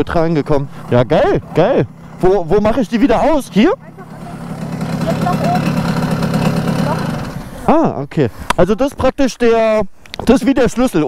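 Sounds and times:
moped engine idling: 0.0 - 7.9.

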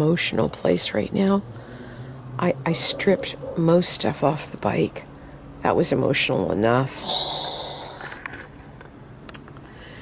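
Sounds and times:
person breathing in: 7.0 - 8.3, 9.7 - 10.0.

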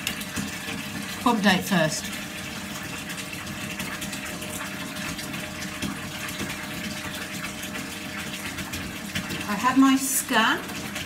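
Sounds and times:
running water rushing: 0.0 - 11.0.

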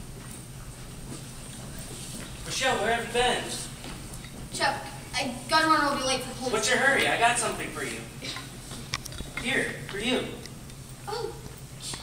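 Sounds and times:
low hall hum: 0.0 - 12.0.

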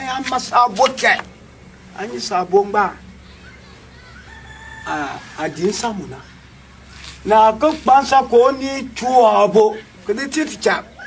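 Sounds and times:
distant rooster crowing: 3.4 - 6.3.

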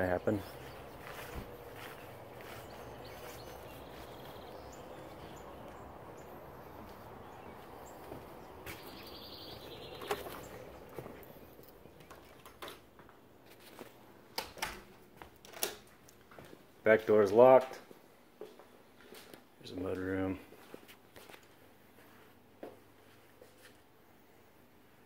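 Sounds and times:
low background ambience: 0.0 - 25.0
faint bird chirps: 0.2 - 10.7.

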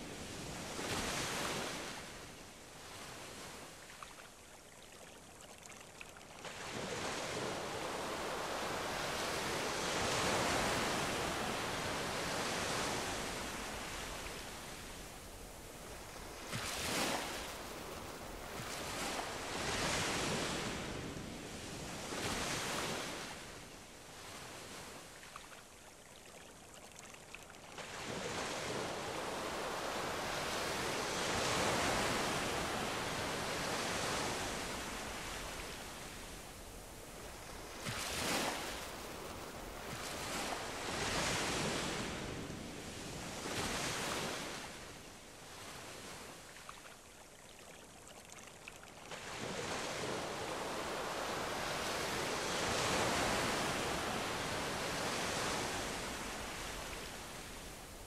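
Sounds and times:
ocean surf on sandy beach: 0.0 - 4.0, 6.4 - 25.4, 27.5 - 46.8, 48.6 - 58.0.

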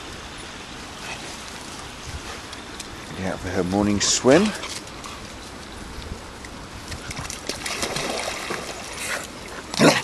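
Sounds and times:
dogs splashing in water: 7.0 - 10.0.

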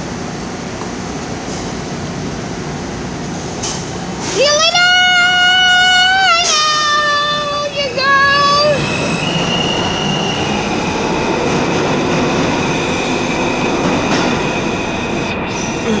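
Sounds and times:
rumble of train wheels on track: 0.0 - 15.9.

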